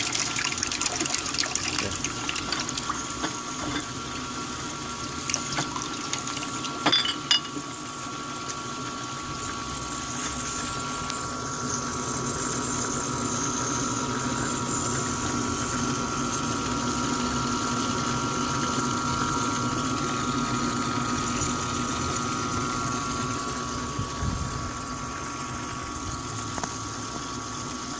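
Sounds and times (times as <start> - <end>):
water jets splashing in bottles: 0.0 - 6.9
water pump humming: 0.0 - 27.9.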